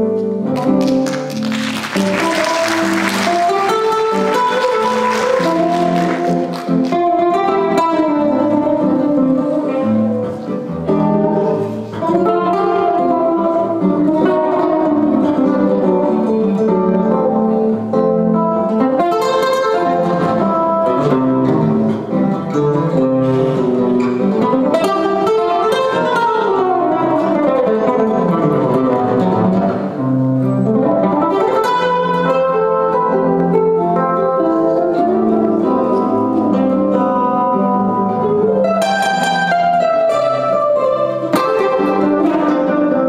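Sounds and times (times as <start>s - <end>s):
acoustic guitars playing jazz: 0.0s - 43.0s.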